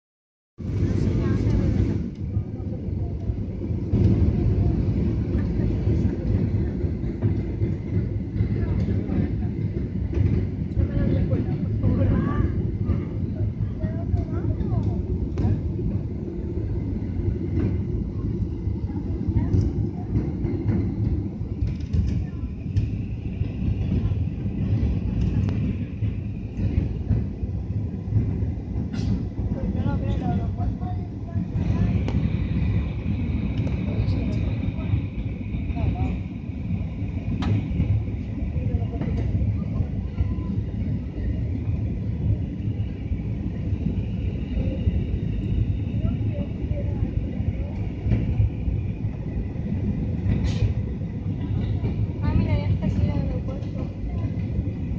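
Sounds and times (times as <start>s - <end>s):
airplane cabin rumble: 0.6s - 54.9s.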